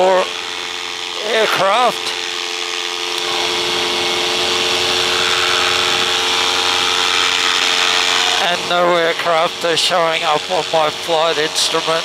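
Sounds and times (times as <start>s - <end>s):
paramotor engine droning: 0.0s - 12.0s.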